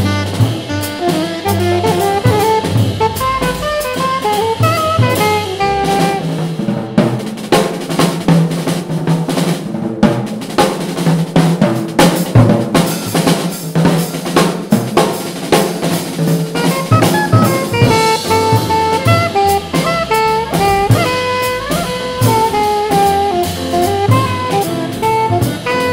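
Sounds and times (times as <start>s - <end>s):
snare drum hits: 0.0s - 6.4s, 10.5s - 25.3s
alto saxophone: 0.0s - 6.5s, 16.5s - 25.9s
bass drum kicks: 0.0s - 7.4s, 16.6s - 25.9s
cymbals: 0.0s - 25.9s.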